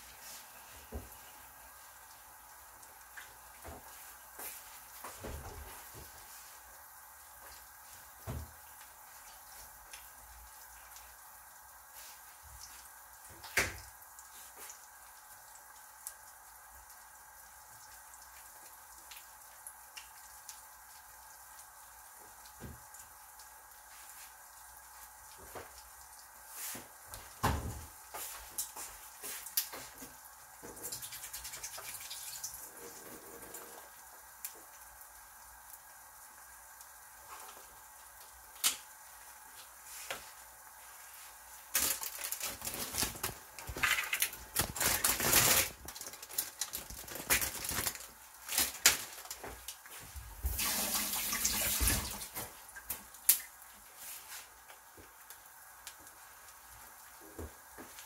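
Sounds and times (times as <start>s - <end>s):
bread frying in oil: 0.0s - 58.0s.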